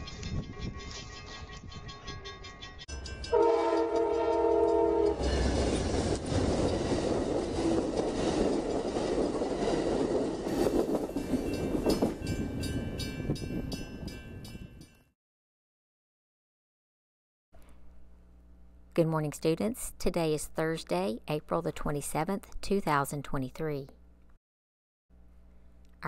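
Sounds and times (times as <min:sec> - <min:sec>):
railroad crossing bell ringing: 0:00.0 - 0:05.6, 0:10.9 - 0:15.1
train passing with wheel noise: 0:00.0 - 0:14.9
train horn: 0:03.3 - 0:05.4.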